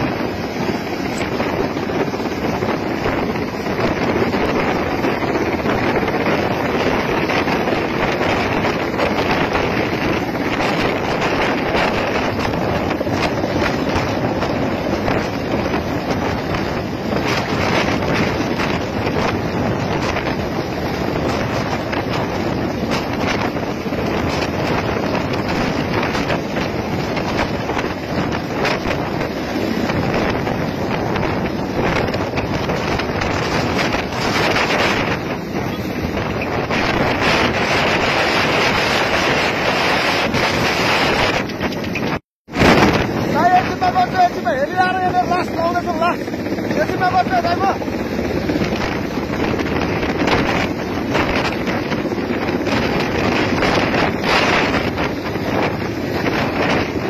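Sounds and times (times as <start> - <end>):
downwash buffeting microphone: 0.0 - 57.0
helicopter hovering overhead: 0.0 - 57.0.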